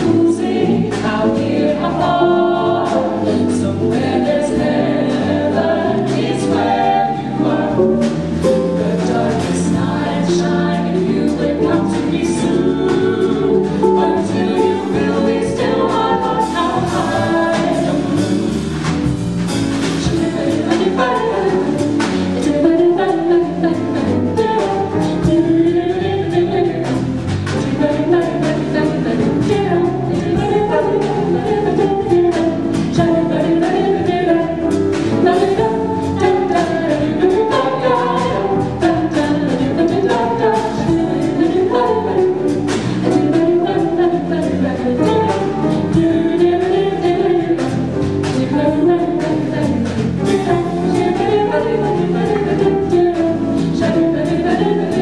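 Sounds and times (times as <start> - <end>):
vocal group scat singing: 0.0 - 18.6, 19.9 - 55.0
piano: 0.0 - 55.0.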